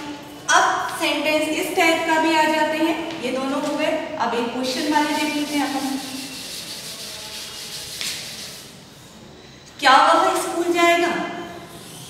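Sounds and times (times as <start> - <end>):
chalkboard duster rubbing chalkboard: 4.7 - 9.2.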